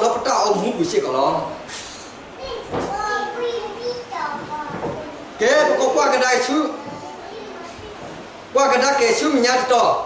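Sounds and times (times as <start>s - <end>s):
children's voices: 2.3s - 6.0s, 6.6s - 8.4s
high-pitched child speaking: 2.4s - 5.3s, 6.8s - 8.2s.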